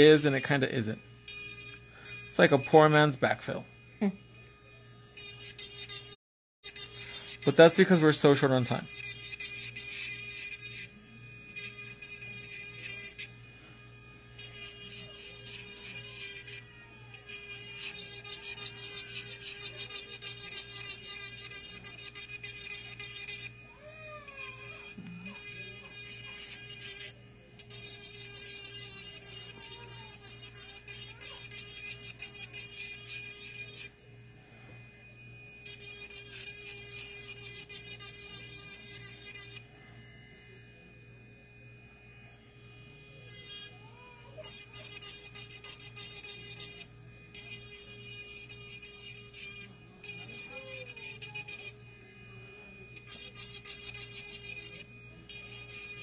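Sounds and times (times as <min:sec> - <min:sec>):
nail file rasping: 0:01.3 - 0:03.0, 0:05.2 - 0:10.9, 0:11.5 - 0:13.3, 0:14.4 - 0:23.5, 0:24.3 - 0:33.9, 0:35.7 - 0:39.6, 0:43.3 - 0:43.7, 0:44.4 - 0:51.8, 0:53.0 - 0:56.0.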